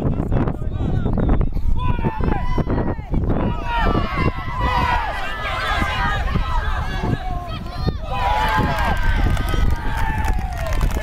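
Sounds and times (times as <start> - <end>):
voices shouting and calling out: 0.0 - 11.0
wind rumble on microphone: 0.0 - 11.0.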